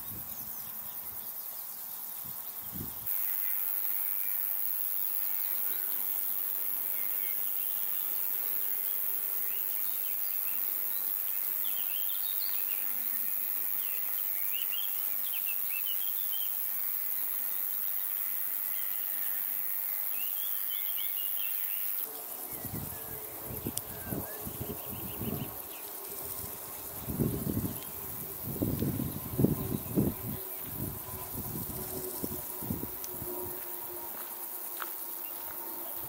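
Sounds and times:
insects stridulating: 0.0 - 36.0.

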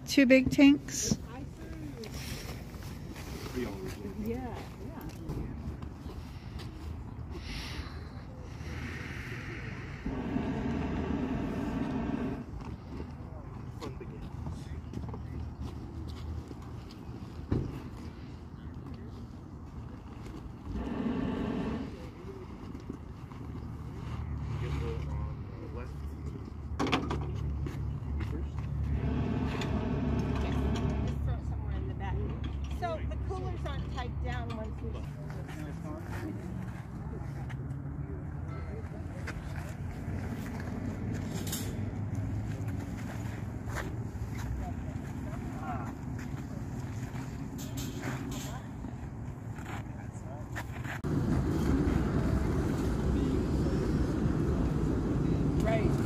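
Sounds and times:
pitched mechanical hum: 6.0 - 13.4, 20.0 - 23.1, 28.3 - 32.3
motor running: 9.8 - 12.5, 20.7 - 22.0, 28.9 - 31.2.

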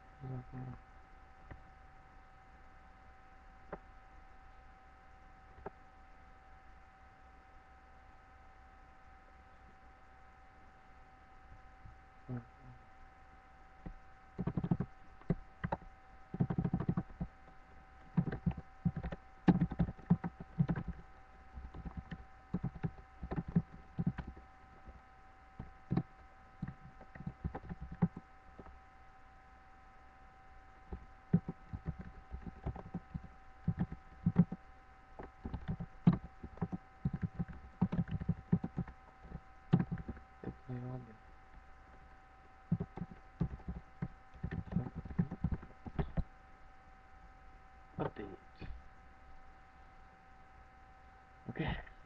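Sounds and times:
faint electrical tone: 0.0 - 52.0.

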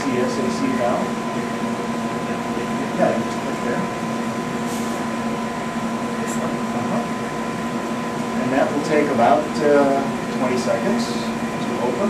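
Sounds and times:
vacuum pumps and ventilation hum: 0.0 - 12.0.

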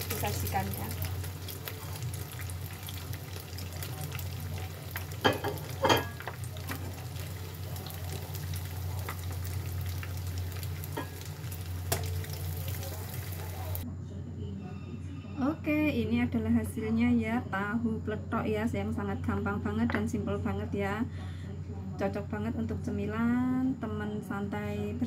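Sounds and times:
deep-frying sizzle in oil: 0.0 - 13.8
metal tongs clicking on pan: 11.9 - 12.2.

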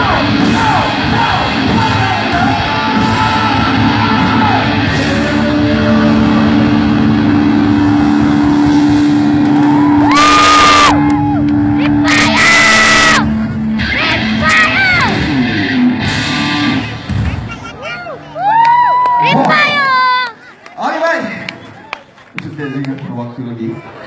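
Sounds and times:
live rock band: 0.0 - 17.6
crowd whooping shouts: 7.6 - 13.3, 17.9 - 20.3.

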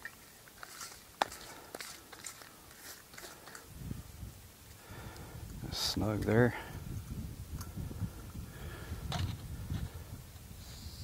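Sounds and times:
wind rumble on microphone: 3.7 - 11.0.

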